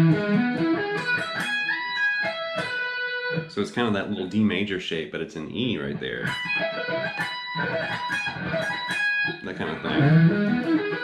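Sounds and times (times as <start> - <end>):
electric guitar lick: 0.0 - 4.1, 6.0 - 11.0.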